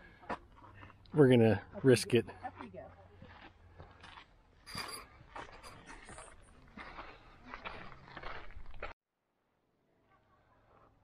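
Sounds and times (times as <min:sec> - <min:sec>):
footsteps crunching on dirt: 0:00.0 - 0:09.0.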